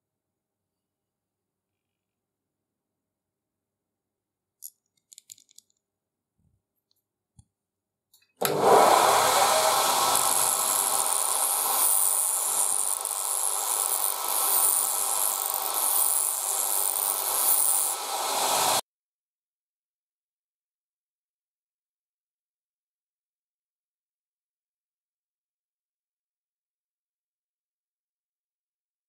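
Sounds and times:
small metal parts clicking: 4.6s - 5.8s, 10.6s - 18.0s
bench grinder grinding steel: 8.4s - 18.8s.

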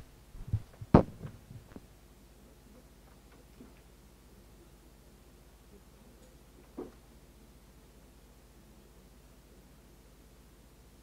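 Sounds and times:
microphone handling thumps: 0.0s - 1.8s
sharp knock on microphone: 0.5s - 1.4s.

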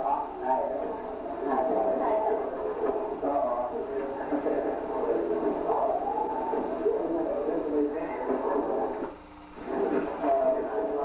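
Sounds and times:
muffled voices talking: 0.0s - 11.0s.

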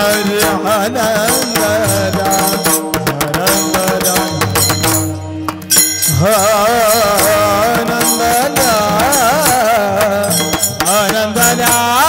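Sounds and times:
percussion strokes: 0.0s - 12.0s
person singing devotional melody: 0.0s - 12.0s.

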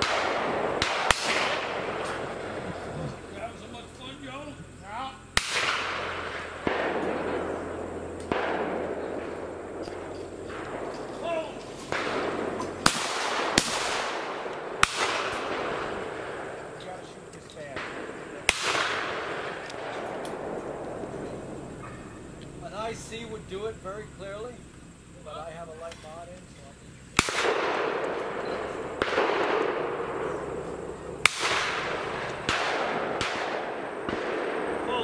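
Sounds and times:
shotgun shots with echo: 0.0s - 3.0s, 5.4s - 22.4s, 27.1s - 35.0s.

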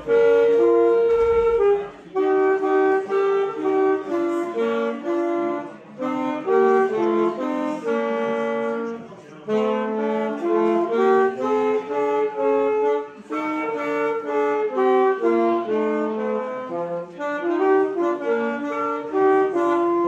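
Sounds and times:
alto saxophone playing: 0.0s - 20.0s
woodwind playing: 0.0s - 20.0s.

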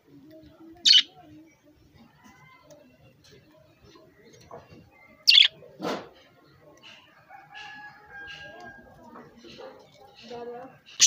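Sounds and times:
budgerigars chirping: 5.3s - 5.6s.

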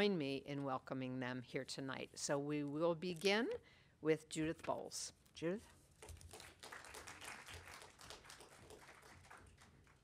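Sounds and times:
light applause: 6.3s - 10.0s.

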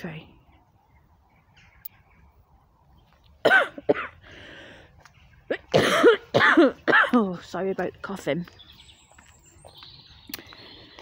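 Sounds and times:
person coughing: 3.4s - 4.2s, 5.5s - 7.2s
person breathing: 4.2s - 5.2s.

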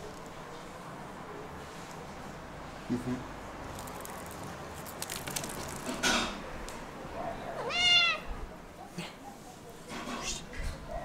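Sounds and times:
cat meowing: 7.6s - 8.4s.

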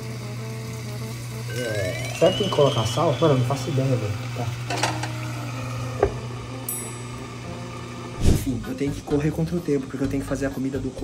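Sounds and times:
glass lid knock on pan: 6.0s - 6.2s.

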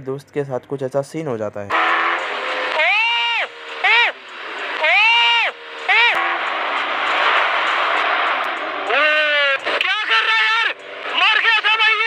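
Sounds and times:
motorcycle engine revving: 1.7s - 12.0s
wind and road noise: 1.7s - 12.0s.

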